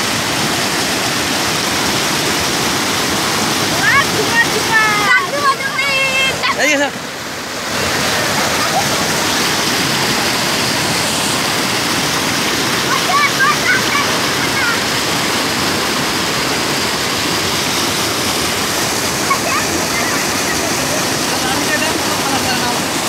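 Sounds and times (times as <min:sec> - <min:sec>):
floodwater rushing and pouring: 0:00.0 - 0:23.0.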